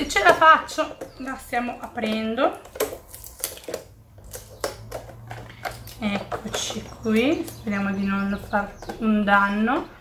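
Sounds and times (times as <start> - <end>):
cardboard packaging clicks and crackles: 2.1 - 6.4.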